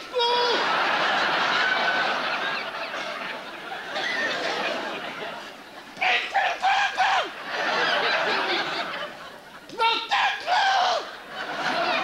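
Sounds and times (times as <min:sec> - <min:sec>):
audience laughing: 0:00.5 - 0:09.8, 0:10.8 - 0:12.0
high strangled puppet voice: 0:06.0 - 0:07.3.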